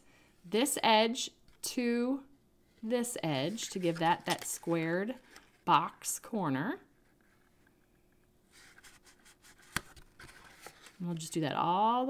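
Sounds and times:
cardstock rustling: 3.4 - 5.7.

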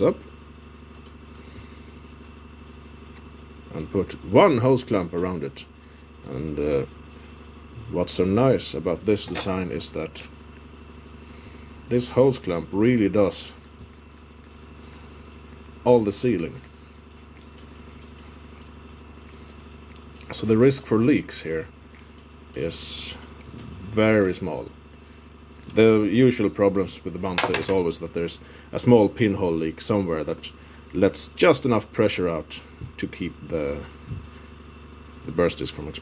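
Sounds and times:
low background hum: 0.0 - 36.0.

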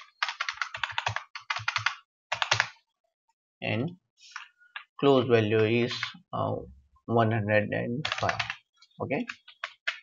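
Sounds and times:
computer keyboard typing: 0.0 - 2.8, 8.0 - 8.6, 9.2 - 10.0.

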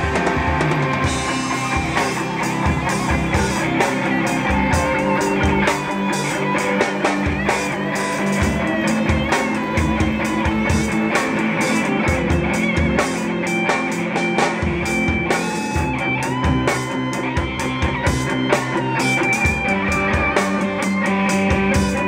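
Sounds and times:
drum kit steady beat: 0.0 - 22.0
electric guitar: 0.0 - 22.0.

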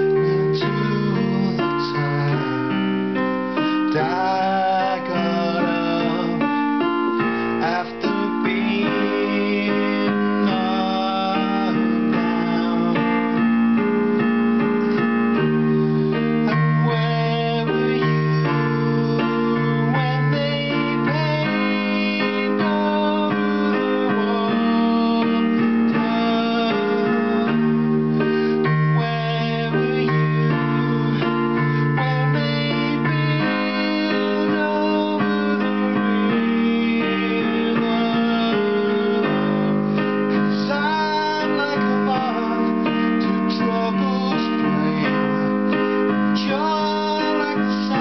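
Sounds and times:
electronic keyboard piano playing: 0.0 - 48.0.

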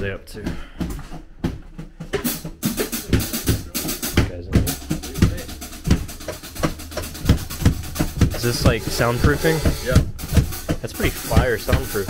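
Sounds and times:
kick drum thumps: 0.0 - 12.0
snare hits: 2.2 - 12.0.

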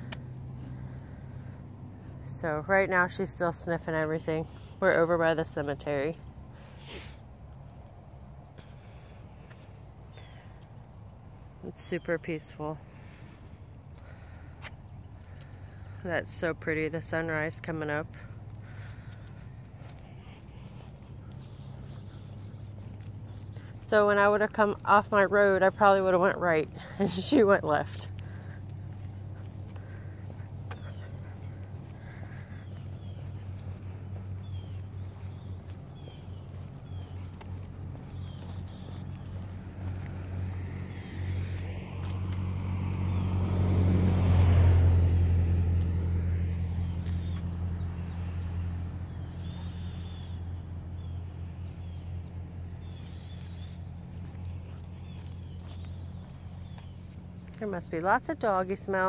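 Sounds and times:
vehicle passing: 0.0 - 59.0.

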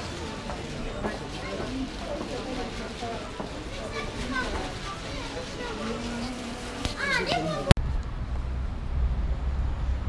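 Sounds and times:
voices chattering: 0.0 - 7.8
low steady rumble: 7.8 - 10.0.

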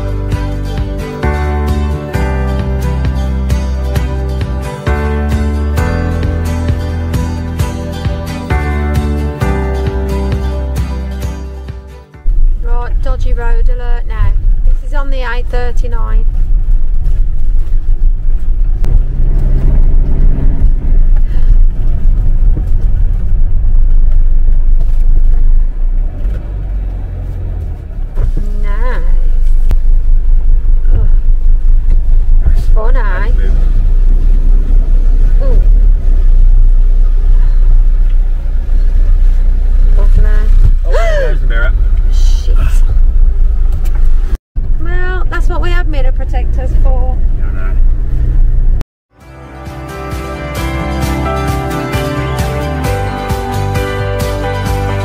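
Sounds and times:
engine and road rumble: 0.0 - 55.0.

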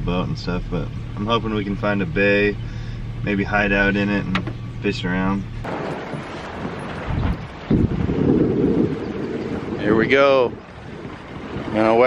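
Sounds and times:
wind buffeting microphone: 5.4 - 12.0.

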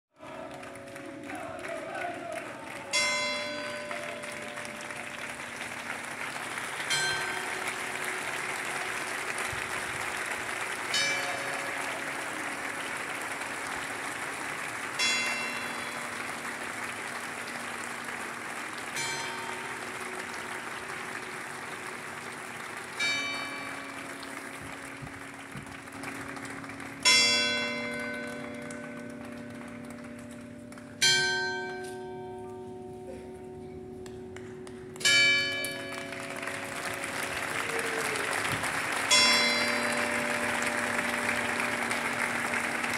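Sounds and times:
crowd applauding: 0.2 - 31.4, 34.0 - 42.9
church bell tolling: 2.9 - 5.7, 6.8 - 9.5, 10.4 - 22.0, 22.9 - 37.4, 39.1 - 42.9.

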